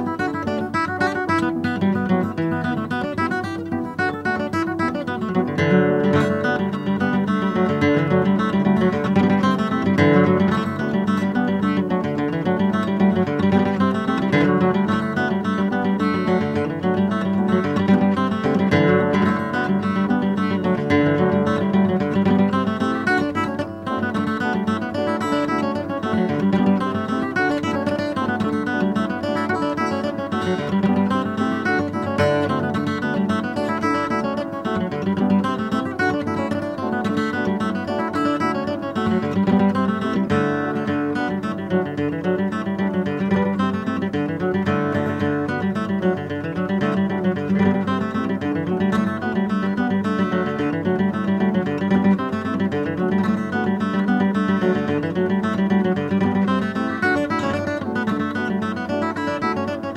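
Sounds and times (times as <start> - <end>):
acoustic guitar dance tune: 0.0 - 59.9.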